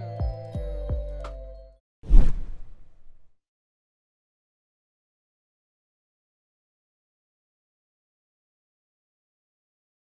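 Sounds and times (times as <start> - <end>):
whoosh with deep thud: 2.1 - 3.3.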